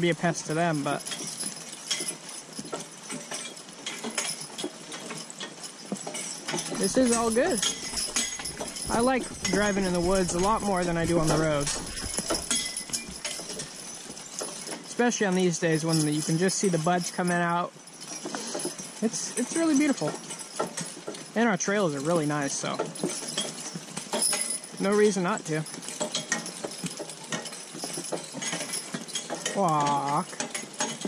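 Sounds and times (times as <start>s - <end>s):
horse hooves clip-clopping on dirt: 0.0s - 31.0s
metal harness clinking: 0.0s - 31.0s.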